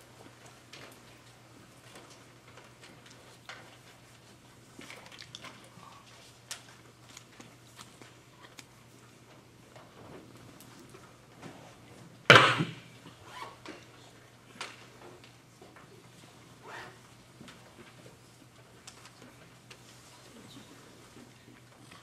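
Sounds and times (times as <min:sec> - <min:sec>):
audience clicks and rustles: 0:00.0 - 0:22.0.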